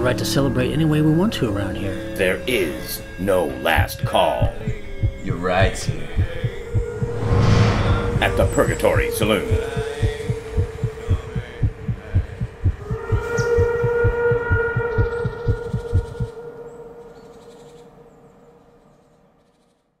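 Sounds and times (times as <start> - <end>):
low thudding pulse: 3.8 - 16.3
sustained droning tone: 4.6 - 18.3.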